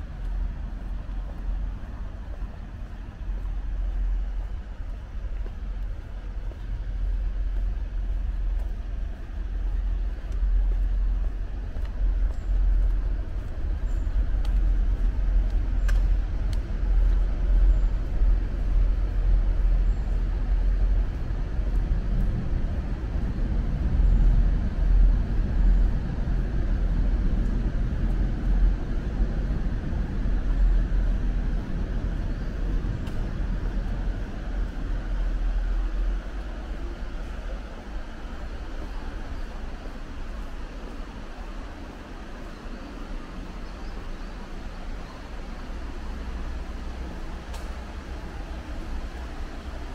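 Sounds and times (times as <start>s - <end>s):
city road traffic rumble: 0.0s - 49.9s.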